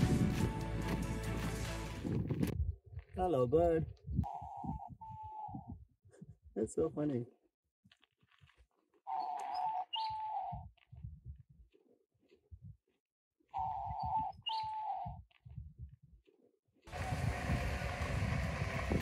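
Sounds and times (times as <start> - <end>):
dove cooing: 4.2 - 5.8, 9.1 - 10.7, 13.5 - 15.2.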